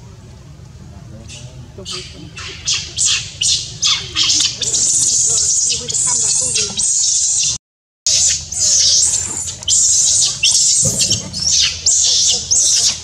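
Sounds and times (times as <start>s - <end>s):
baby monkey shrill screams: 1.9s - 13.0s.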